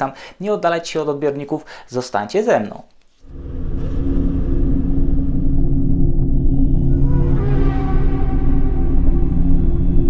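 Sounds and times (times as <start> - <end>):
deep rumbling drone: 3.2 - 10.0.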